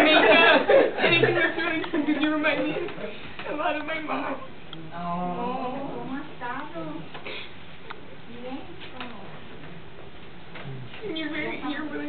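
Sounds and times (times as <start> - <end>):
faint voices in a room: 0.0 - 12.0.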